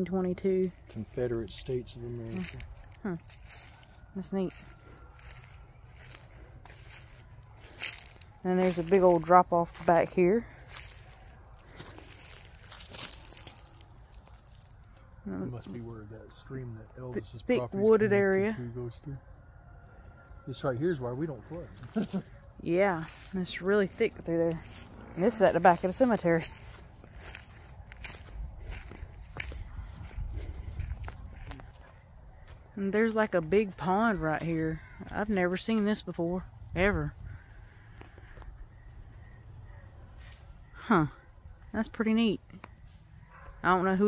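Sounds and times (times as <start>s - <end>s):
faint low outdoor background: 0.0s - 44.0s
footsteps crunching on dry leaves: 0.7s - 16.5s, 20.9s - 32.7s.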